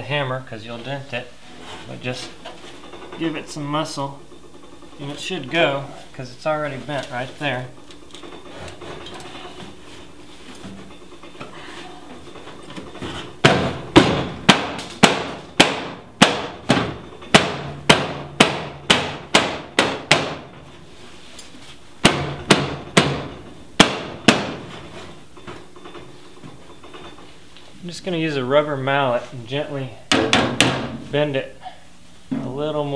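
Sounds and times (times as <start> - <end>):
hammer blows on sheet steel: 13.4 - 20.5.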